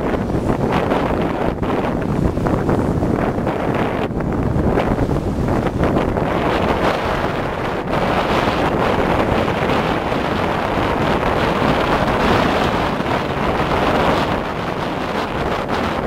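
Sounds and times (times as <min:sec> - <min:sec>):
boat running: 0:00.0 - 0:16.0
water noise: 0:00.0 - 0:16.0
wind buffeting microphone: 0:00.0 - 0:16.0.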